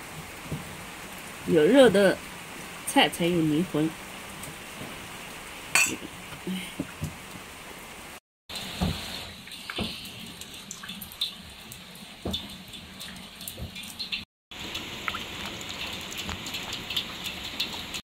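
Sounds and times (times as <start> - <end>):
water splashing in metal pot: 8.5 - 18.0.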